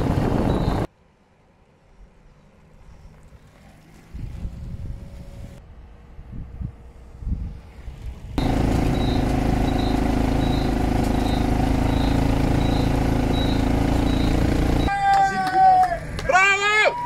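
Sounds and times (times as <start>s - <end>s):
vehicle engine and road noise: 0.0s - 14.9s
man shouting: 14.9s - 17.0s.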